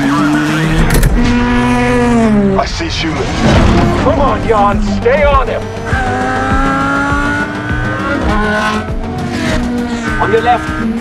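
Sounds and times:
racing car engines: 0.0 - 11.0.

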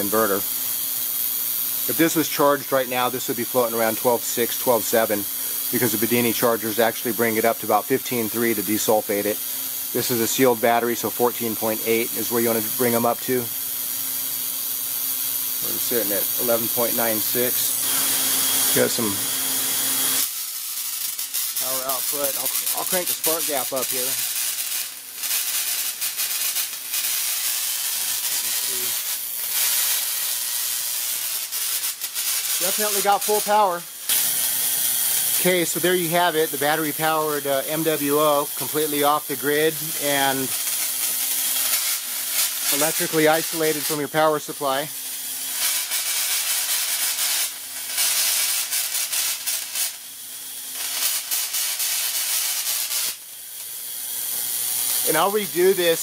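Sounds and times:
spark gap hissing and sizzling: 0.0 - 56.0.

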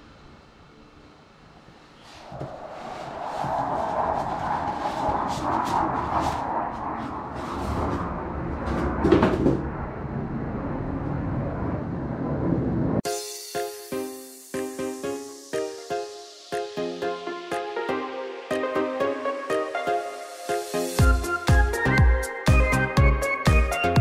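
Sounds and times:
foam scraping against cardboard: 2.1 - 8.0.

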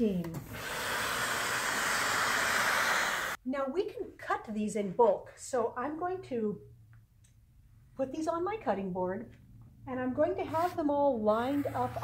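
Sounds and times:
steam iron hissing: 0.4 - 3.4.

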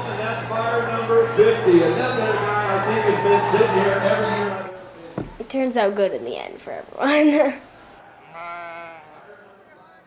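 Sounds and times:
lamb bleating: 8.2 - 9.2.

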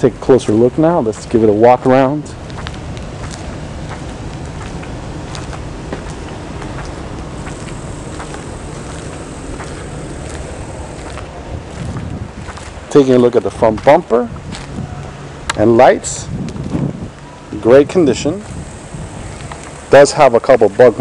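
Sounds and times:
low rumbling outdoor noise: 0.0 - 21.0.

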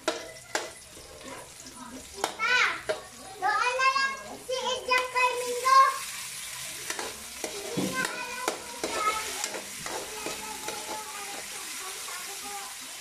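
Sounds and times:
metal spatula scraping pan: 0.0 - 3.2, 6.1 - 12.3
vegetables sizzling in hot oil: 0.0 - 13.0.

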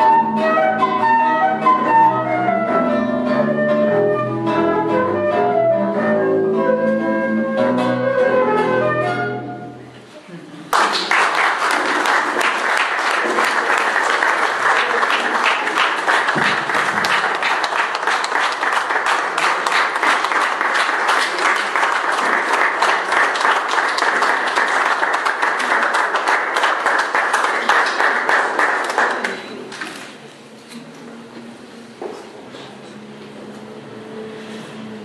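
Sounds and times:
audience applauding: 10.7 - 29.8.

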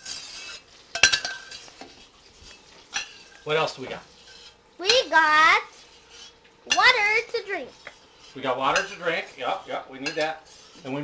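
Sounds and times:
tableware clinking: 0.9 - 1.6.

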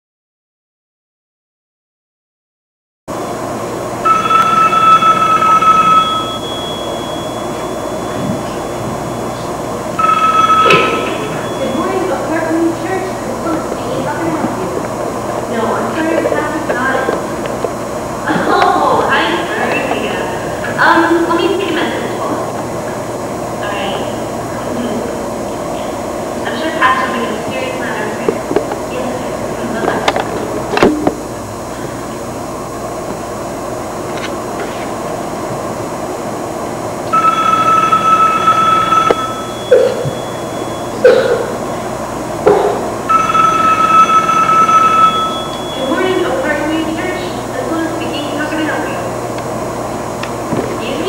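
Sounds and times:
room noise: 3.1 - 51.0
telephone ringing: 4.0 - 12.2, 37.1 - 41.0, 43.0 - 46.2
indistinct voices: 10.7 - 32.3.

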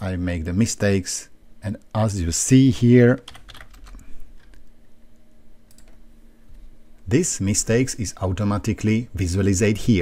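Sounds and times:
faint steady hum: 0.0 - 10.0
computer keyboard keystrokes: 3.3 - 4.0, 5.7 - 6.0.

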